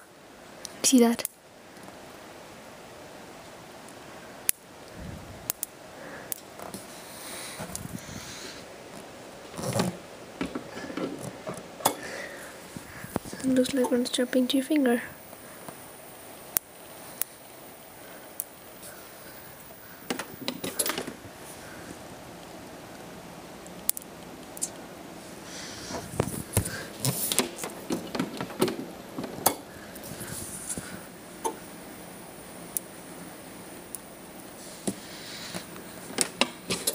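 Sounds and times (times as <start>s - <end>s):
static sparks snapping: 3.8s - 7.0s, 13.1s - 21.2s, 23.6s - 24.8s, 26.1s - 36.9s.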